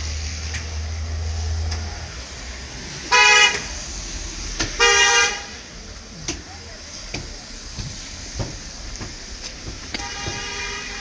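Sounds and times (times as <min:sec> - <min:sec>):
street traffic rumble: 0:00.0 - 0:11.0
vehicle horn: 0:03.1 - 0:03.6, 0:04.8 - 0:05.6, 0:10.0 - 0:11.0.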